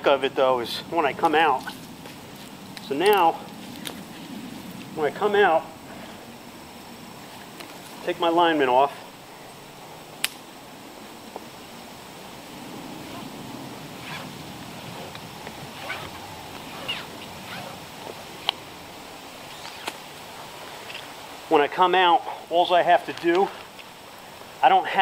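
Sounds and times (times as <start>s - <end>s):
rope and strap rustling: 1.1s - 6.3s, 7.2s - 8.1s, 12.9s - 18.7s, 19.4s - 21.2s.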